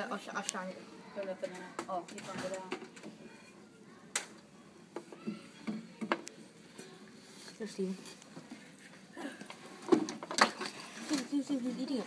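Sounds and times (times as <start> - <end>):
faint rustling handling noise: 6.2 - 12.0.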